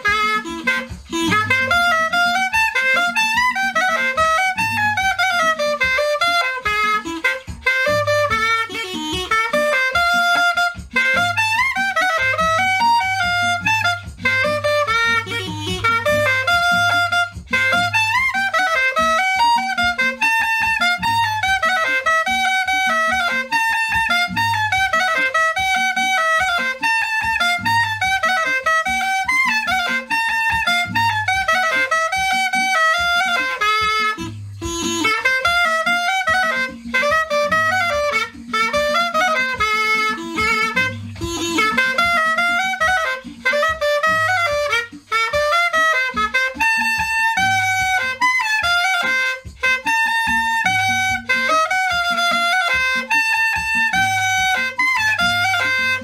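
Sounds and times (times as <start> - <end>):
low pulsing beat: 0.0 - 56.0
reedy cane flute melody: 0.0 - 56.0.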